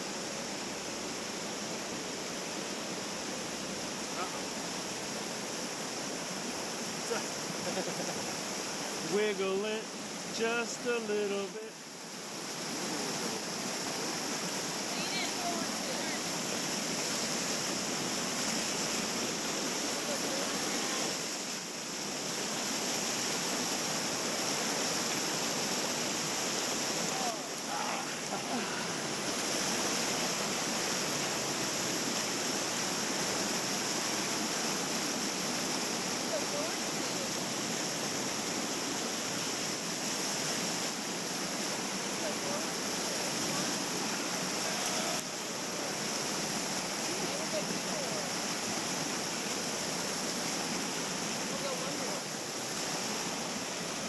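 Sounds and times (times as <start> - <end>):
river water churning over rocks: 0.0 - 54.0.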